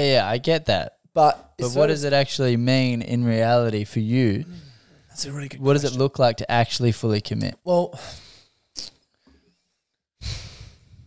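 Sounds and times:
man sighing: 4.4 - 5.0.

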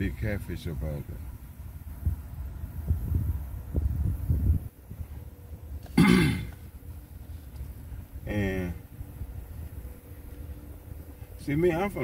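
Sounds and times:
steady low rumble: 0.0 - 12.0
man clearing throat: 5.9 - 6.6.

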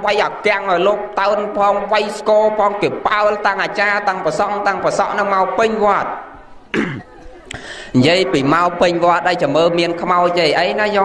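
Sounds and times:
man coughing: 6.7 - 7.8.

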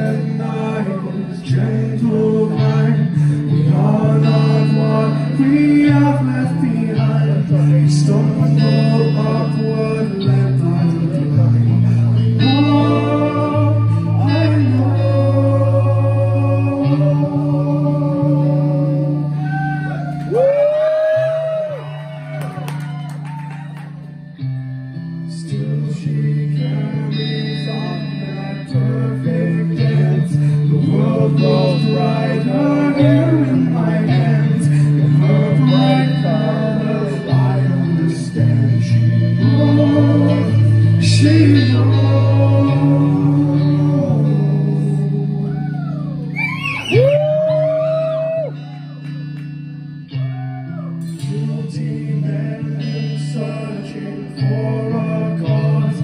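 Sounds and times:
person singing long notes: 0.0 - 22.1, 25.3 - 49.0
electric guitar: 0.0 - 56.0
low bass notes: 0.0 - 56.0.

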